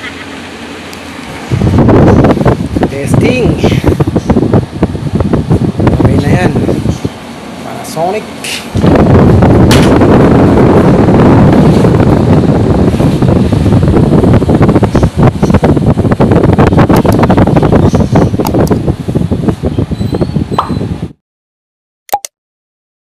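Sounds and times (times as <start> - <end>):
air conditioner blower rushing: 0.0 - 21.2.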